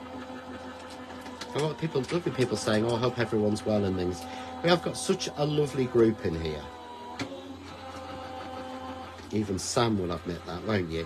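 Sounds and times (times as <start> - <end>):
die-cutting machine motor hum: 0.0 - 11.0.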